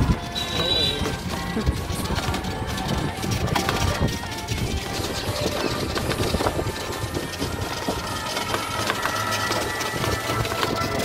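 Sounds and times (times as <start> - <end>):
rickshaw frame rattling and clicking: 0.0 - 11.0.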